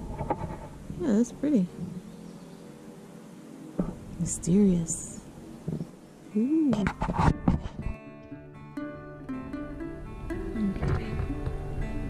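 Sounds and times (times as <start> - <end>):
faint woodland background noise: 0.0 - 12.0.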